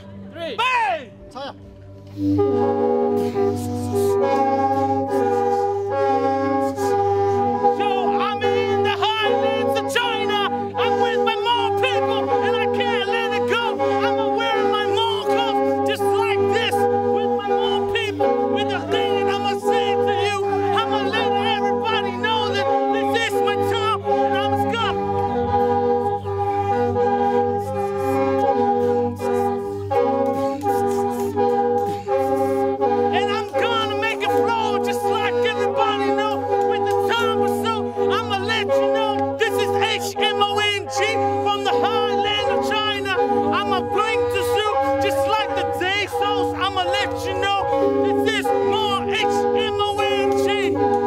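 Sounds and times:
mouth organs droning: 2.1 - 51.0
person singing: 3.2 - 51.0.

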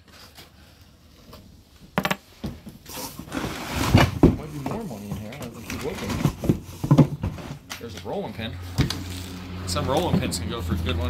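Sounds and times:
people talking: 4.4 - 6.3, 7.8 - 8.6, 9.7 - 11.0.

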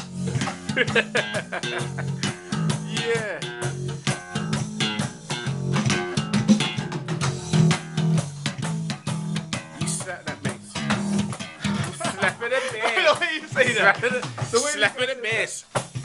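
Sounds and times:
slap bass guitar: 0.0 - 16.0.

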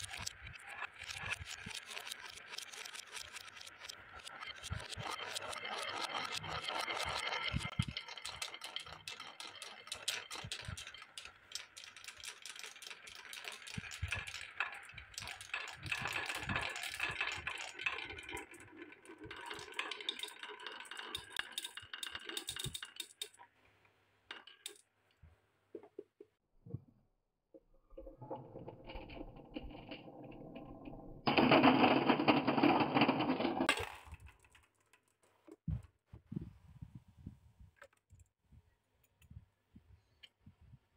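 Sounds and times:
glass marbles rolling on wooden tracks: 0.0 - 23.5, 24.3 - 24.9, 28.0 - 35.2.

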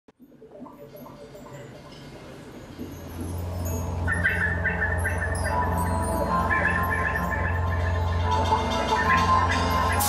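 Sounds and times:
steady low drone: 2.8 - 10.0
trilling high notes: 3.1 - 10.0.

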